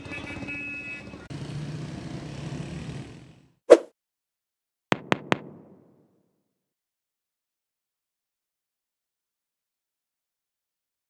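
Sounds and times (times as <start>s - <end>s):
vehicle engines running: 0.0s - 3.6s.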